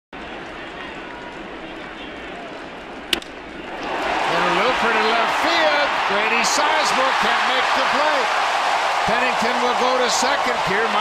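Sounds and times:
stadium crowd murmur: 0.2s - 11.0s.

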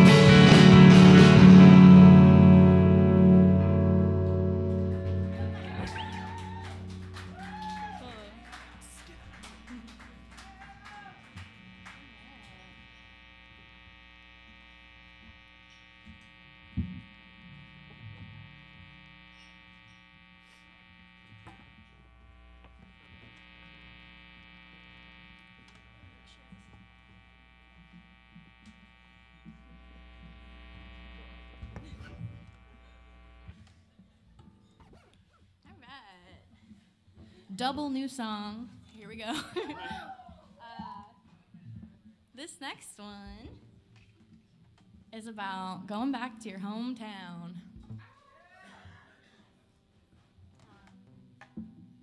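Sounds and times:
electrical mains hum: 0.0s - 34.6s.

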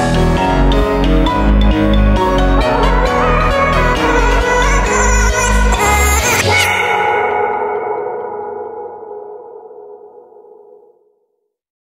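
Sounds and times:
held synthesizer chord: 0.0s - 11.1s.

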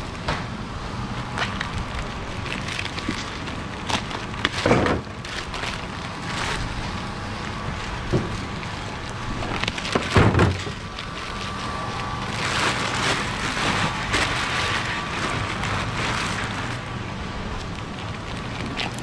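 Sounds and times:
shrink wrap crinkling and tearing: 1.4s - 19.0s.

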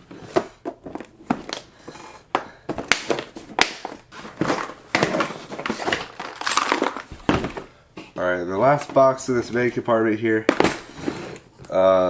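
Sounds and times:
plastic boxes clacking and rattling: 2.3s - 7.7s.

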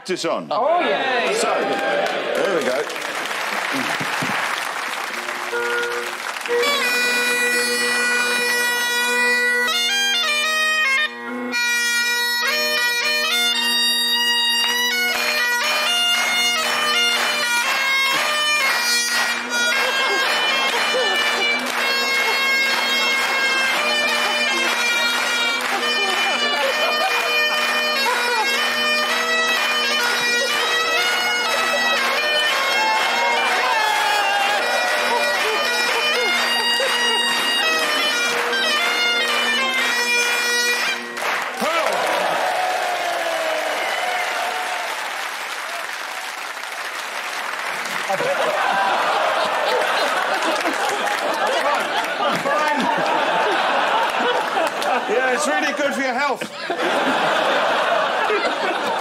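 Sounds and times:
bagpipes playing: 3.1s - 59.0s.

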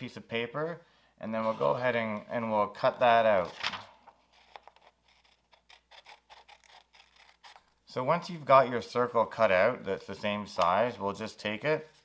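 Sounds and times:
scissors snipping paper: 4.4s - 7.8s.

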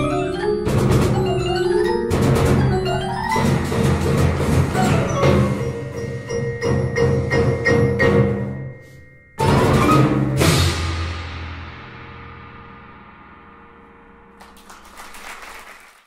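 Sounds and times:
marimbas and vibraphones: 0.0s - 10.6s
timpani strokes: 0.0s - 14.8s
crashing cymbals: 8.6s - 14.4s.

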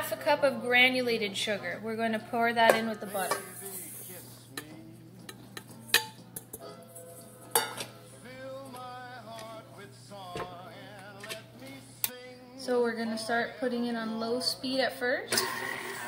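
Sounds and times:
faint background music: 0.0s - 16.0s
metal bowl clinking: 2.6s - 8.0s.

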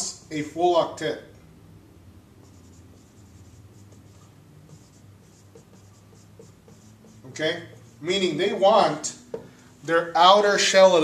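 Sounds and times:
faint low hum: 0.2s - 10.5s
marker writing on whiteboard: 2.4s - 9.6s.

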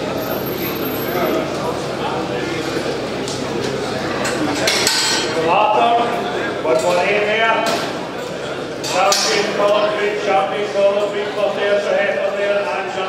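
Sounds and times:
voices talking in echoing hall: 0.0s - 13.0s
metal gate clanks and knocks: 4.2s - 5.4s.

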